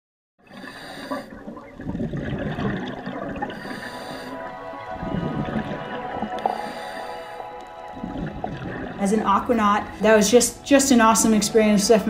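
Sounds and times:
underwater bubbling: 0.4s - 11.9s.

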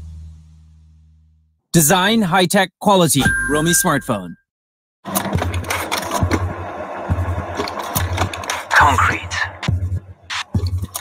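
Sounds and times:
low bass pulse: 0.0s - 1.5s
engine-like mechanical noise: 5.1s - 11.0s.

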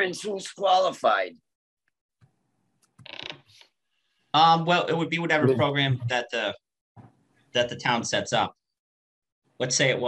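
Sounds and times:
short creak or rattle: 3.0s - 3.7s.

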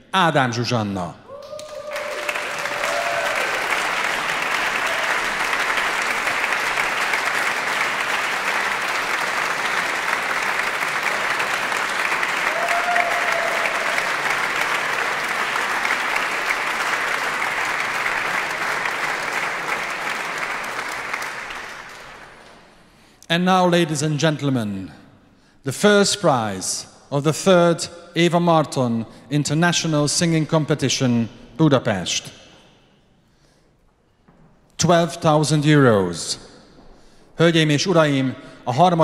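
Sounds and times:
audience applauding: 1.4s - 22.8s.

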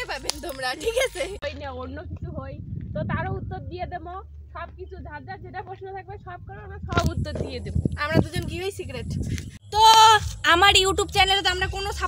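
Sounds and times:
woman's voice: 0.0s - 12.0s.

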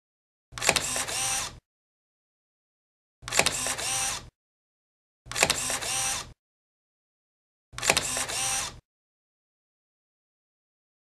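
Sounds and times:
camera shutter click and whir: 0.6s - 1.6s, 3.3s - 4.3s, 5.3s - 6.4s, 7.8s - 8.8s.

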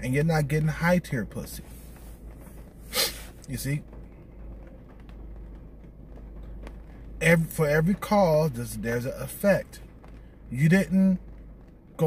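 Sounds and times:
car cabin low rumble: 0.0s - 12.0s.

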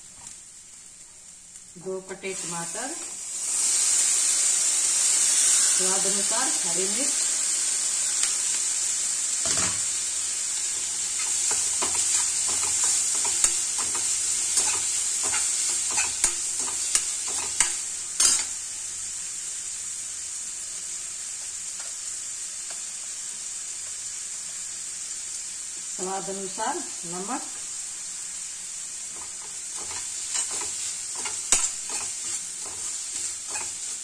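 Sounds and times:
masala sizzling in oil: 0.0s - 34.0s
metal spoon scraping pan: 11.2s - 18.5s, 29.2s - 34.0s.

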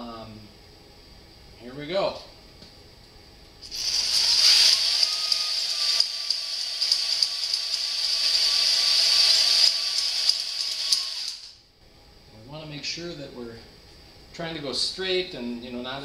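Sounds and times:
hand drill motor whine: 3.6s - 11.6s.

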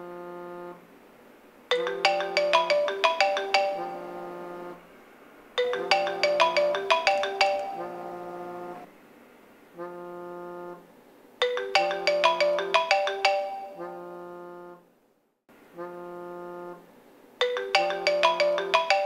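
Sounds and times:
electronic ringtone melody: 1.7s - 4.8s, 5.6s - 8.8s, 11.4s - 14.1s, 17.4s - 19.0s.

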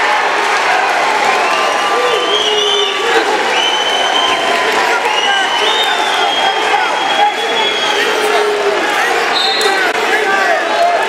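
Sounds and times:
crowd and coaches shouting: 0.0s - 11.0s.

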